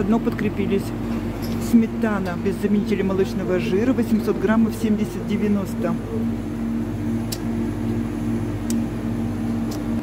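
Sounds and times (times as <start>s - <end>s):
refrigerator electrical hum: 0.0s - 10.0s.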